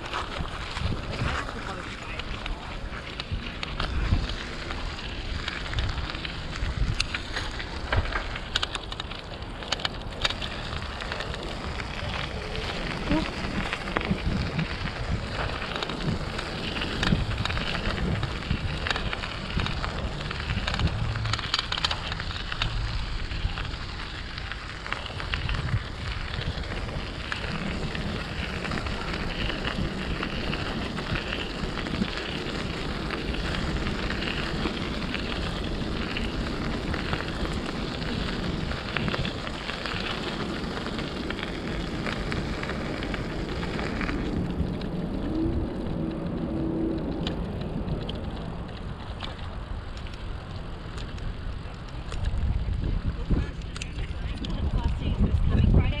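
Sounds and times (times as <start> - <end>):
bicycle tyres crackling on trail: 0.0 - 56.0
wind on microphone: 0.0 - 56.0.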